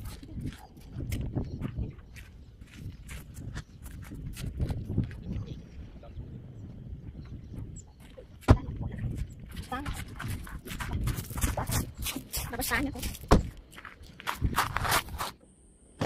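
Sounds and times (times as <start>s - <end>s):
footsteps crunching on gravel: 0.0s - 5.6s, 8.0s - 15.4s.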